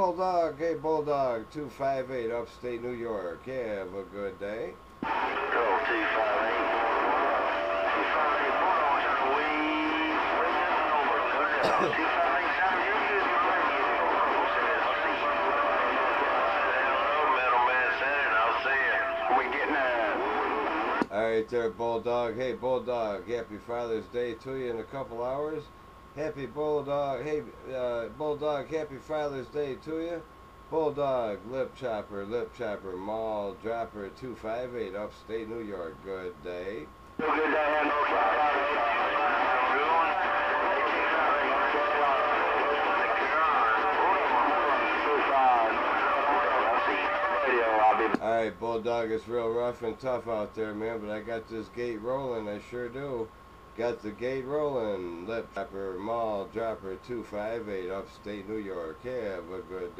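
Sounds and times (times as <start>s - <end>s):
voices talking over radio speaker: 0.0s - 59.9s
garbled voices over radio speaker: 5.0s - 21.1s, 37.2s - 48.4s
radio static: 5.0s - 21.1s, 37.2s - 48.4s.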